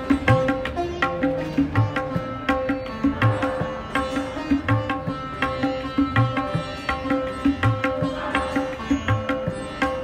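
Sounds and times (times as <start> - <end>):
plucked strings: 0.0 - 10.0.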